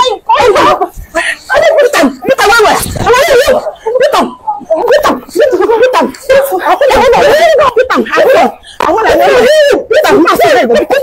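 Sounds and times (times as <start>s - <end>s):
women shouting and wailing: 0.0s - 11.0s.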